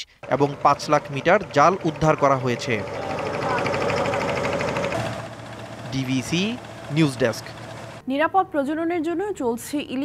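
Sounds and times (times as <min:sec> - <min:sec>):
motorboat engine knocking: 0:00.2 - 0:08.0.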